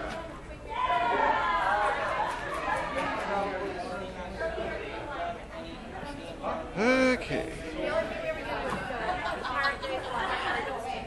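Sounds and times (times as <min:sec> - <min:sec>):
people chattering in a hall: 0:00.0 - 0:11.0
loud voice: 0:06.8 - 0:07.6.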